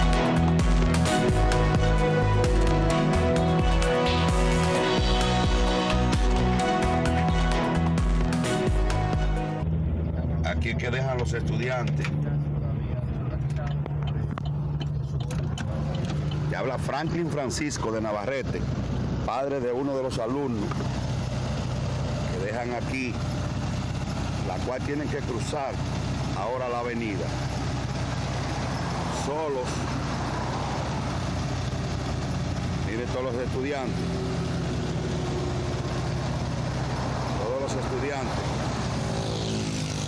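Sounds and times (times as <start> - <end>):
car engine drone in cabin: 0.0 - 40.0
road noise: 0.0 - 40.0.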